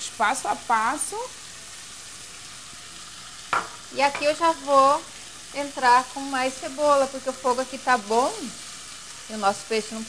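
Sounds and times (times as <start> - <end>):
fish and vegetables sizzling in oil: 0.0 - 10.0.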